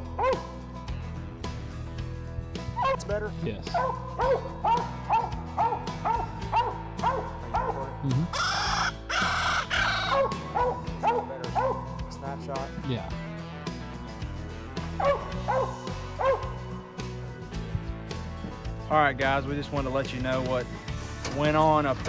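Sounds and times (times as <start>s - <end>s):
dog barking: 0.2s - 0.5s, 2.8s - 3.0s, 3.7s - 8.0s, 10.0s - 12.0s, 15.0s - 16.6s.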